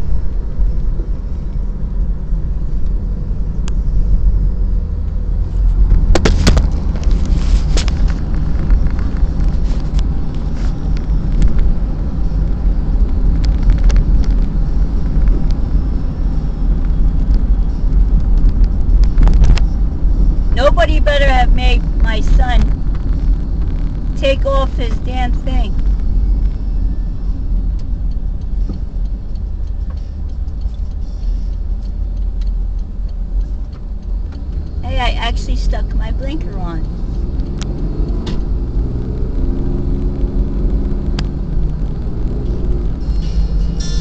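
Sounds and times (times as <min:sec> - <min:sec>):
car engine and tyres rumbling: 0:00.0 - 0:44.0.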